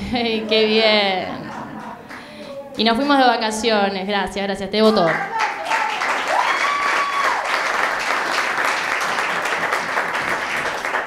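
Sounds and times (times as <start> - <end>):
person cheering: 5.0 - 7.6
audience applauding: 5.0 - 11.0.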